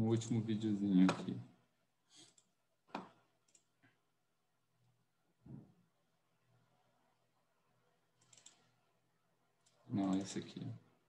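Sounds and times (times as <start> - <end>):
computer mouse clicks: 2.2 - 3.7, 8.2 - 8.7.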